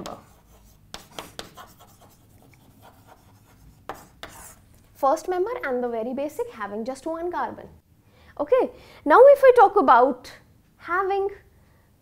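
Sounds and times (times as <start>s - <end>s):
chalk tapping and scraping on chalkboard: 0.0s - 4.7s.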